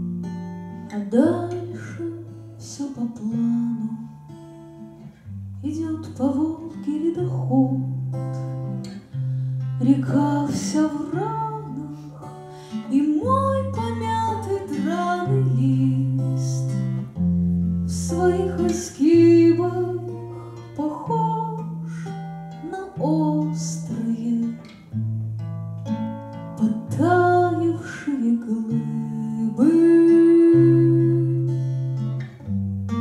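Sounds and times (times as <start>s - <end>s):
strummed acoustic guitar: 0.0s - 33.0s
woman singing: 0.8s - 4.4s, 5.6s - 9.0s, 9.8s - 17.1s, 17.8s - 24.8s, 26.6s - 31.8s.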